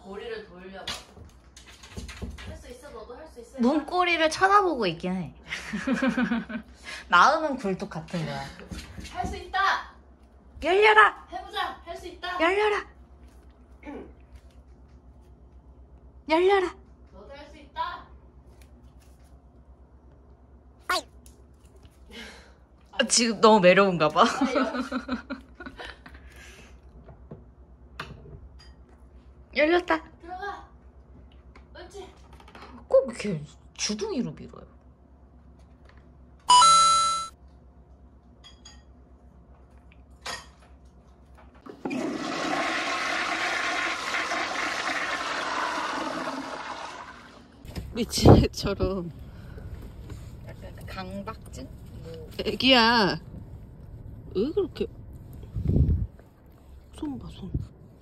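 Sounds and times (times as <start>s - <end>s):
toilet flushing: 41.6s - 47.7s.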